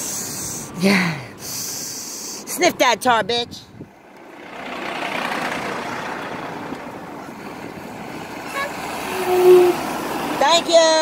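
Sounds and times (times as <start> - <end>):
vehicle and road noise: 0.0 - 11.0.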